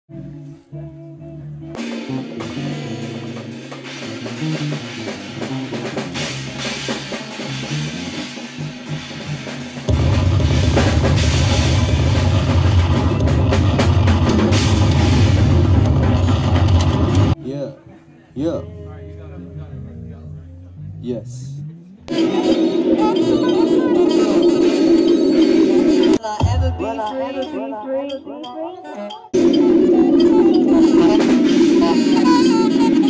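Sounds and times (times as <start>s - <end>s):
band music with drums: 1.7s - 17.4s, 22.1s - 27.6s, 29.3s - 33.0s.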